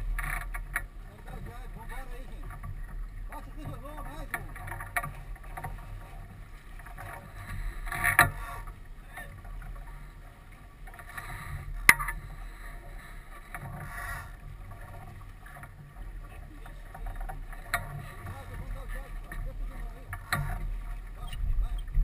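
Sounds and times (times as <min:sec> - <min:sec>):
water rushing: 0:00.0 - 0:22.0
wind on deck: 0:17.6 - 0:22.0.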